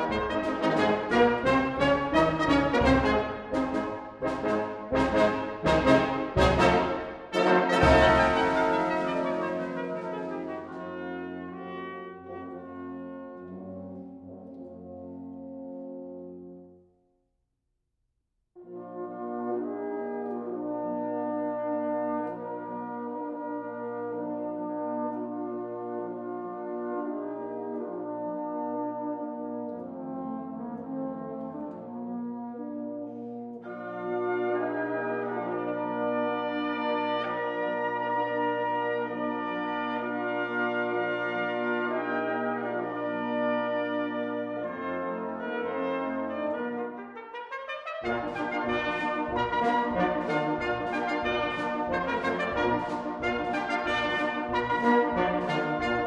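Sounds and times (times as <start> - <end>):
brass band playing: 0.0 - 16.6, 18.6 - 56.0.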